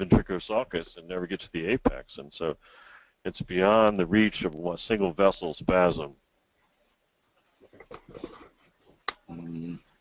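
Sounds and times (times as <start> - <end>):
faint indistinct voice: 9.3 - 9.8.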